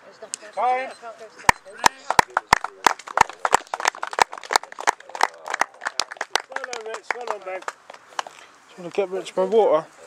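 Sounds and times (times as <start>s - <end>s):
people clapping: 1.5s - 8.4s.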